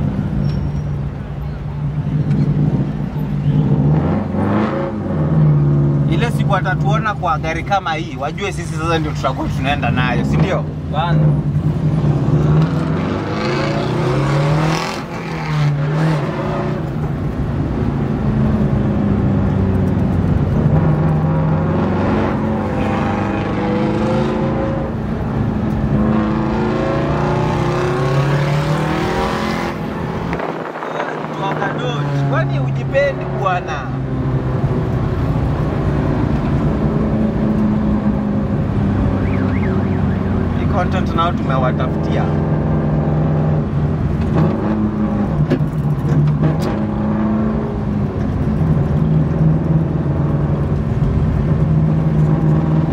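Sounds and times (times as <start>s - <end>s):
car engine accelerating: 9.0s - 52.9s.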